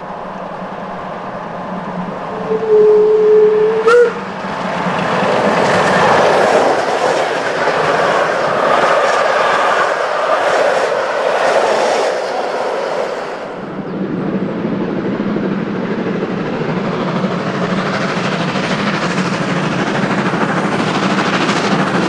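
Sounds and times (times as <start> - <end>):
train wheels clattering over rails: 3.8 - 13.6, 15.5 - 22.0.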